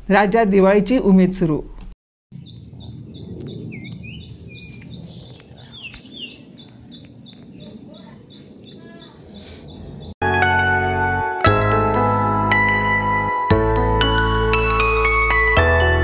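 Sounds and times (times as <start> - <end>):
low outdoor background din: 5.3 - 9.7
music: 10.2 - 16.0.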